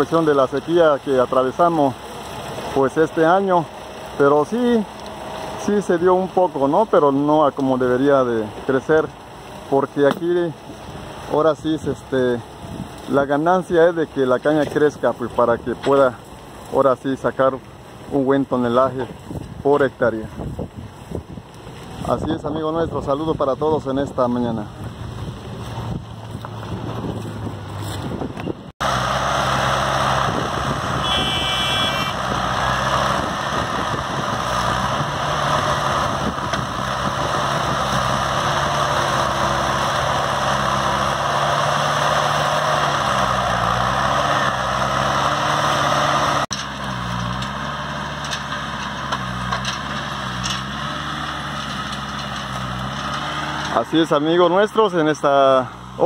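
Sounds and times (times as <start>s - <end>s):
loader engine running: 0.0s - 11.4s, 23.2s - 56.0s.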